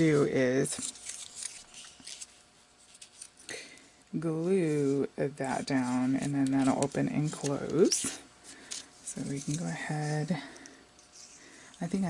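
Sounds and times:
paper rustling and scraping: 0:00.0 - 0:03.4, 0:05.6 - 0:10.2.

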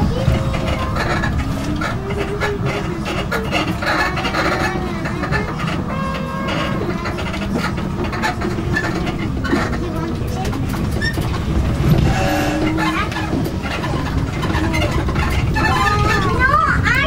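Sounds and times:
distant indistinct voices: 0:00.0 - 0:17.0.

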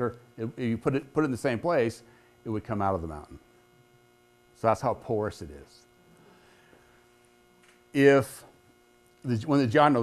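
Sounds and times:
man speaking: 0:00.0 - 0:03.4, 0:04.6 - 0:05.8, 0:08.0 - 0:08.5, 0:09.2 - 0:10.0
electrical mains hum: 0:00.0 - 0:10.0.

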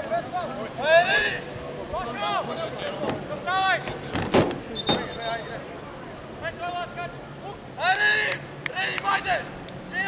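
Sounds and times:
referee's whistle blast: 0:04.7 - 0:05.6.

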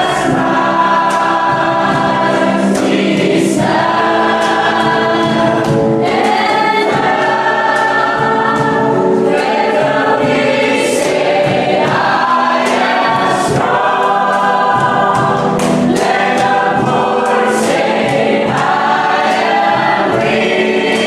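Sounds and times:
congregation singing: 0:00.0 - 0:21.0
live band playing: 0:00.0 - 0:21.0.

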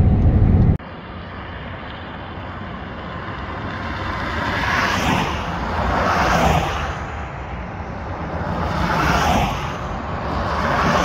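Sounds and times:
cars passing on highway: 0:00.0 - 0:11.0.

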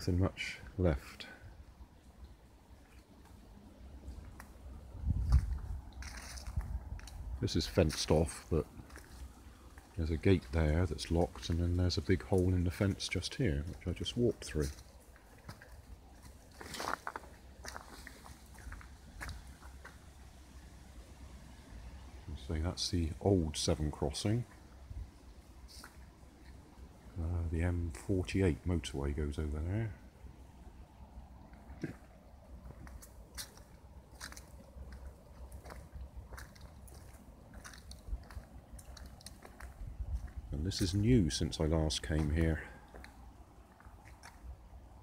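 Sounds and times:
faint low rumble: 0:00.0 - 0:45.0
footsteps crunching through dry leaves: 0:05.1 - 0:20.2, 0:32.6 - 0:41.1.

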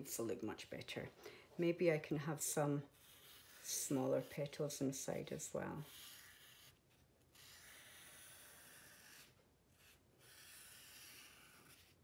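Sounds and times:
marker drawing on paper: 0:02.6 - 0:12.0.

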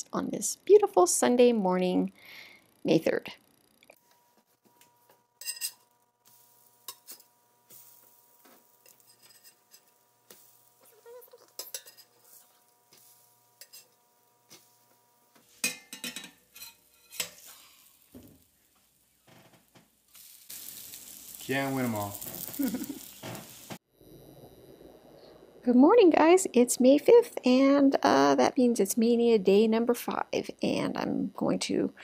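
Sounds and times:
metal spatula scraping skillet: 0:05.4 - 0:18.2.

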